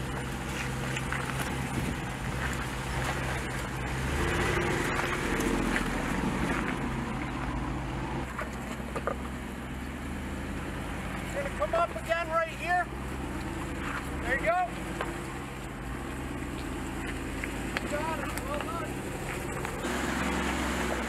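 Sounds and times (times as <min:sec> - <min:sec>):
engine running at low revs: 0:00.0 - 0:21.0.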